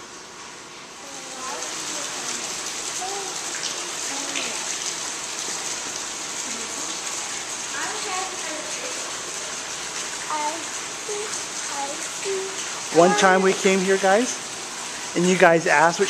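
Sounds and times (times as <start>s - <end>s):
running water rushing: 0.0s - 16.0s
faint voices: 11.1s - 14.3s.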